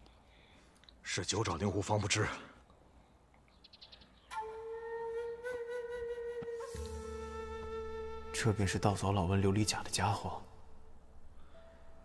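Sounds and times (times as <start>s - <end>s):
flute-like held note: 4.3s - 8.4s.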